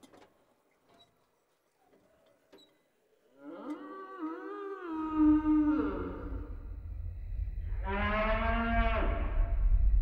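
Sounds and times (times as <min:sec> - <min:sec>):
cartoon moo: 0:03.4 - 0:06.5, 0:07.6 - 0:09.5
low rumble: 0:05.4 - 0:10.0.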